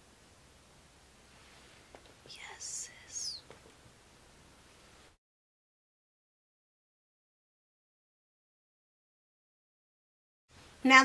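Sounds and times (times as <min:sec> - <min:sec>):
woman whispering: 0:02.3 - 0:03.5.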